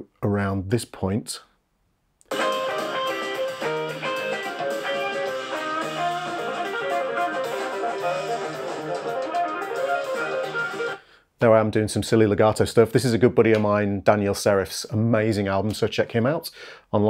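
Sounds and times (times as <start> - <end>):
backing music: 2.3 - 11.0
electric guitar rapid runs: 2.3 - 11.0.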